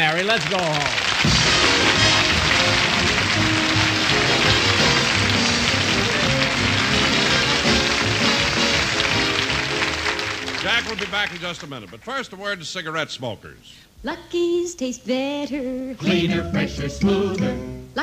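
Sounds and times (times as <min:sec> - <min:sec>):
audience applause: 0:00.0 - 0:12.3
orchestra playing: 0:01.0 - 0:11.4.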